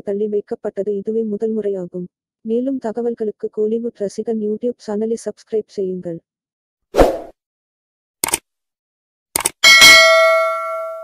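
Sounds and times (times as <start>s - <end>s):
notification bell ding: 9.6s - 11.0s.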